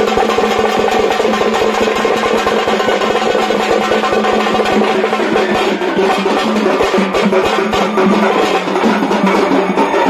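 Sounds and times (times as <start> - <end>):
loud fast drumming: 0.0 - 10.0.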